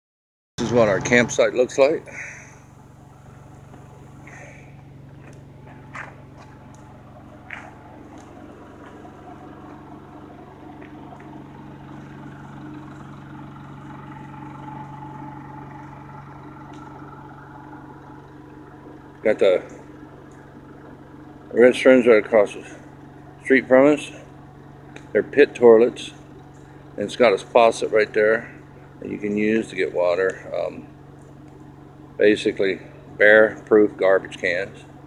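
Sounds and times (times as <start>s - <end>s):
low engine hum: 0.6s - 35.0s.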